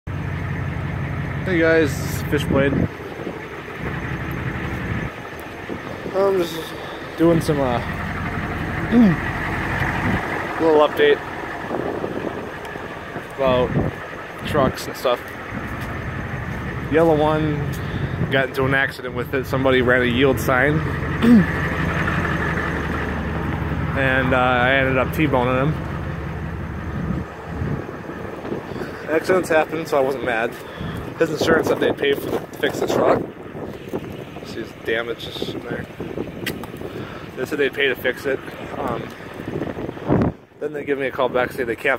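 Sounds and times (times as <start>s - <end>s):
vehicle engine idling: 0.1s - 41.9s
wind buffeting microphone: 1.5s - 40.7s
man's hesitation sound: 8.8s - 9.3s, 21.2s - 21.6s.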